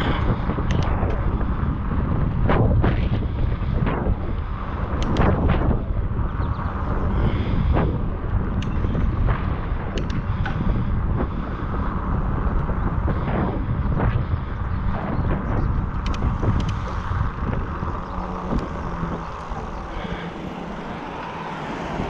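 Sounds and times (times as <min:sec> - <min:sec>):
road and tyre rumble: 0:00.0 - 0:22.0
wind buffeting microphone: 0:00.0 - 0:22.0.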